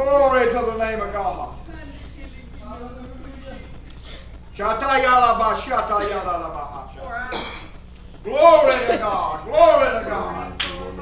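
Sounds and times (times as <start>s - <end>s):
sharp clap: 10.6s - 10.8s.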